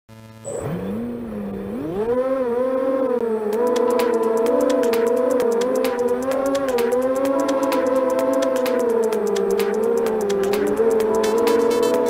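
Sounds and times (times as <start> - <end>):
drone motors whining: 0.2 - 12.0
quick regular ticking: 3.5 - 12.0.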